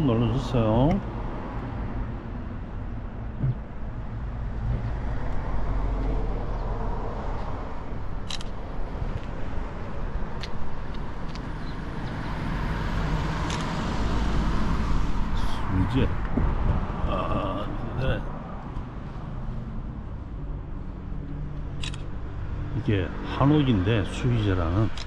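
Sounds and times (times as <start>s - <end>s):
road traffic rumble: 0.0s - 25.0s.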